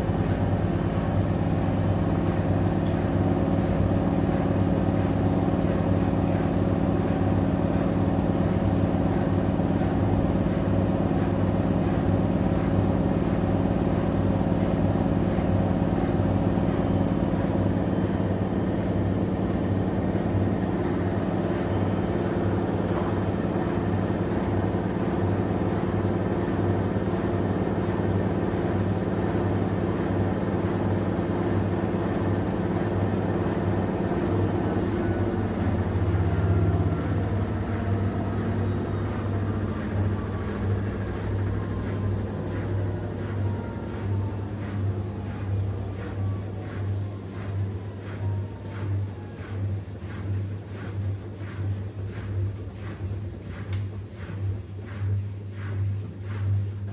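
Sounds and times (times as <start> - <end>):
washing machine motor hum: 0.0 - 56.9.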